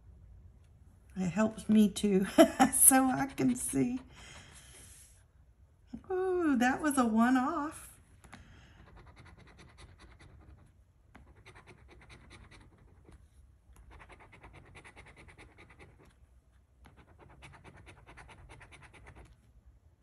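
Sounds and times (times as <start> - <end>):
coin scratching lottery ticket: 11.2 - 13.2, 13.9 - 16.1.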